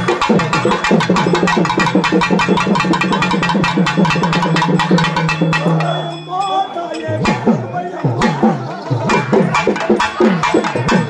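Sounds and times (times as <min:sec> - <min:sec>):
folk drumming with sticks: 0:00.0 - 0:06.4, 0:07.0 - 0:11.0.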